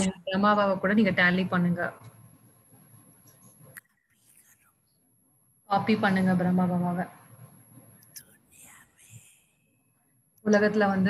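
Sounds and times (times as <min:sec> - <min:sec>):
faint whispering voice: 0:08.1 - 0:09.4.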